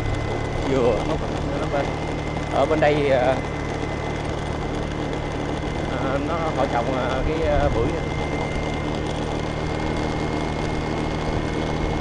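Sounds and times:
road and wind noise: 0.0s - 12.0s
small motorbike engine running: 0.0s - 12.0s.

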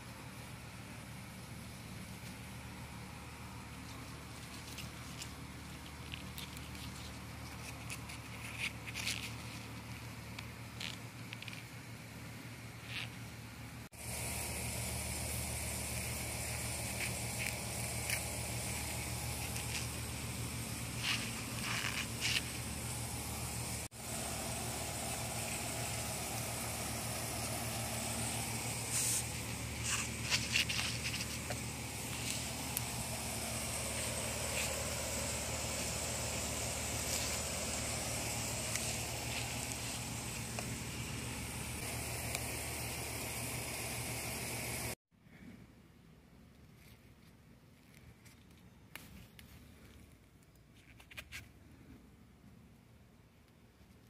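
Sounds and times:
steady low hum: 0.0s - 47.2s
high hiss: 13.9s - 45.0s.

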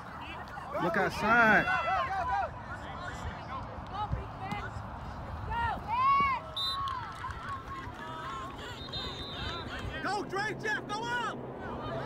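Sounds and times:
people shouting and yelling: 0.0s - 4.8s.

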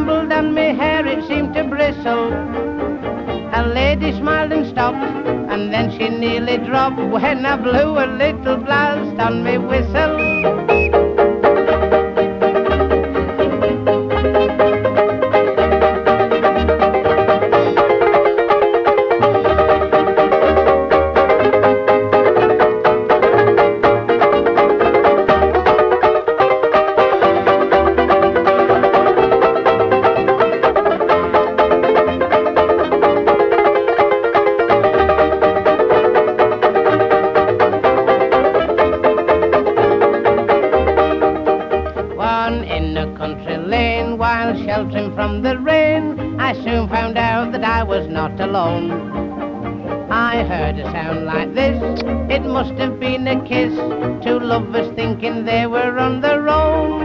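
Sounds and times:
band accompaniment: 0.0s - 57.0s
ukulele-banjo: 0.0s - 57.0s
repeating bass figure: 9.8s - 11.9s.

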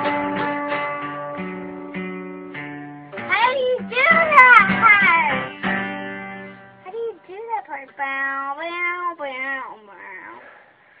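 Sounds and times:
acoustic guitar chord strum: 0.0s - 8.4s.

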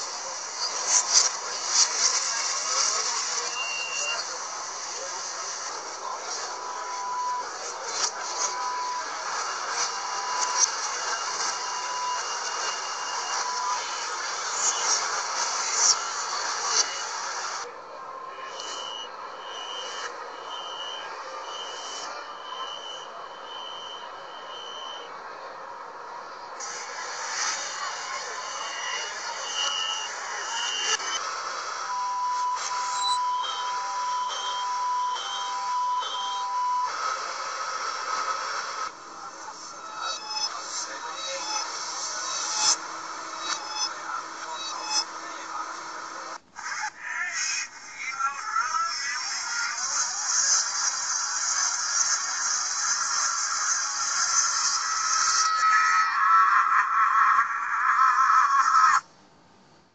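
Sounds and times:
train and station noise: 0.0s - 46.6s
reversed door warning beeps: 2.7s - 4.4s, 6.6s - 15.0s, 18.4s - 25.1s, 27.5s - 31.2s, 31.8s - 37.0s, 39.2s - 46.4s.

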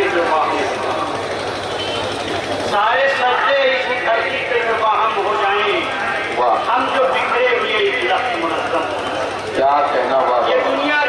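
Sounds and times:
man reciting poetry over loudspeaker: 0.0s - 1.3s, 2.7s - 11.0s
steady background noise: 0.0s - 11.0s.

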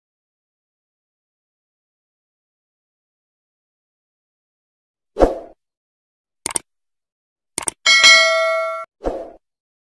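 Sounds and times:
bright bell chime: 7.9s - 8.9s.

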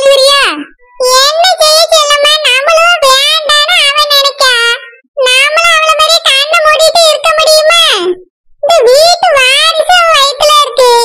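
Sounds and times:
high-pitched cartoon voice speaking: 0.0s - 11.0s.

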